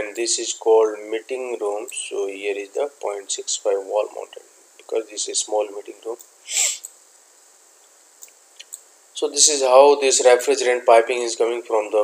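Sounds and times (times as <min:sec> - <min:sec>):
open microphone hiss: 0:00.0 - 0:12.0.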